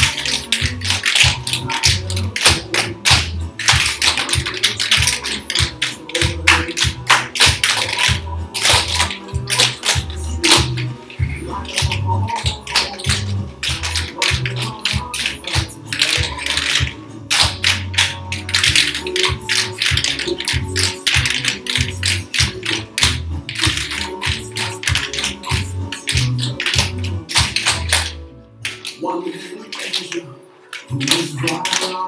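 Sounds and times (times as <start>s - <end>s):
recorded music with bass beat: 0.0s - 28.0s
tap shoes clicking on floor: 0.0s - 29.0s.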